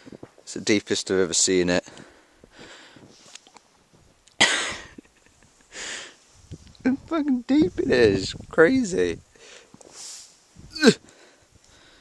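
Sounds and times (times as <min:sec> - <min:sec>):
person coughing: 0:04.4 - 0:04.9.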